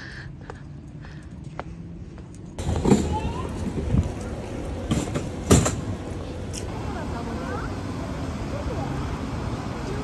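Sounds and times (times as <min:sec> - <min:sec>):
street noise hum: 0:00.0 - 0:10.0.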